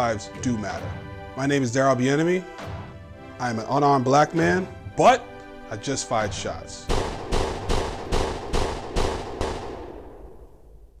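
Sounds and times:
echoing gunshot sound effects: 6.9s - 11.0s.

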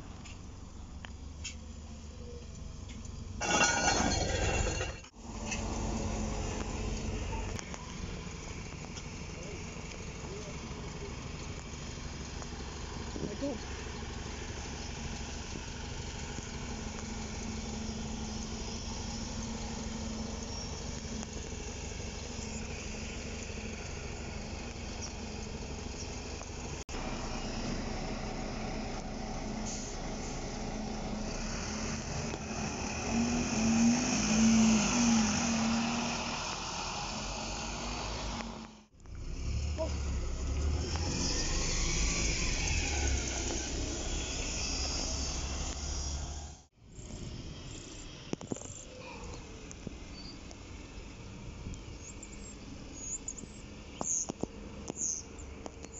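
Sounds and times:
diesel bus engine idling: 0.0s - 3.4s, 5.1s - 32.4s
bus driving past: 5.1s - 55.9s
bus pulling away: 5.1s - 55.9s.

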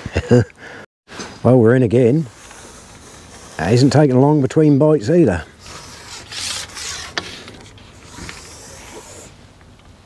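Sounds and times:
faint rubbing and rustle: 1.2s - 9.5s.

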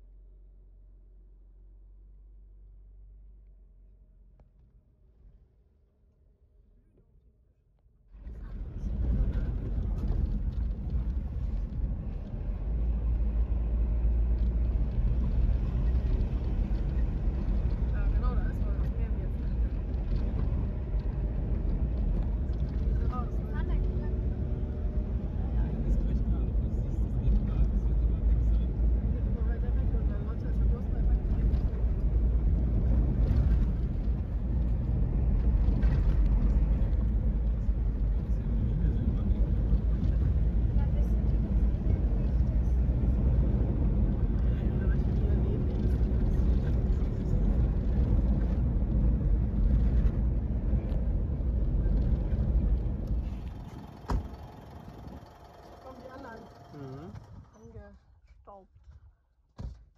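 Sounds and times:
vehicle driving on sandy track: 8.1s - 58.0s.

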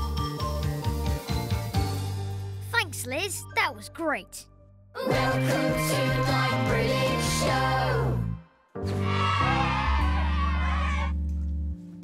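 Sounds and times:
cartoon theme jingle: 2.7s - 7.6s.

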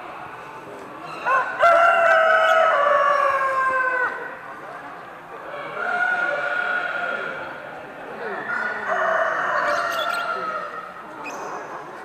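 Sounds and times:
roosters crowing: 1.1s - 4.5s, 5.5s - 7.5s, 8.2s - 11.0s.

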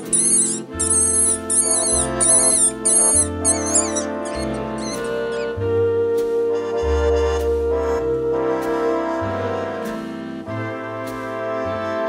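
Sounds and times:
mink kit squeaking: 0.0s - 5.6s
background music with held chords: 0.0s - 12.0s.

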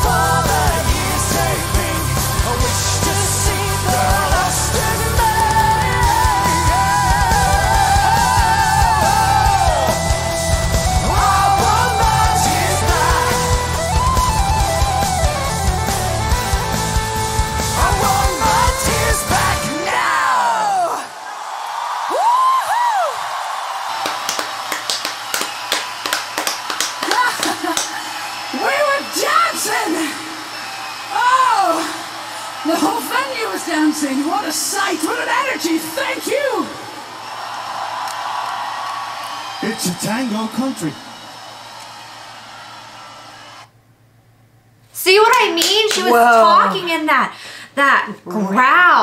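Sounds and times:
crowd cheering and clapping: 0.0s - 43.8s, 45.2s - 46.9s
shouts and whoops: 5.7s - 15.5s, 18.0s - 43.7s, 45.6s - 46.9s.

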